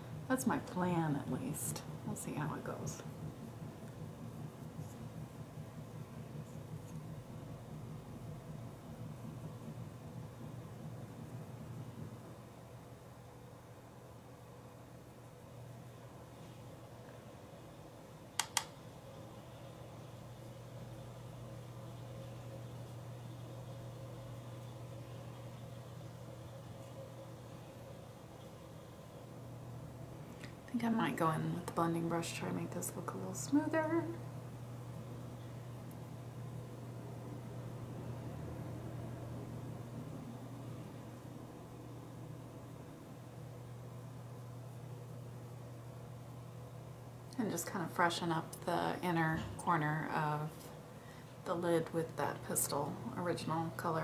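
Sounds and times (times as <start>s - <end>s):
low room hum: 0.0s - 54.0s.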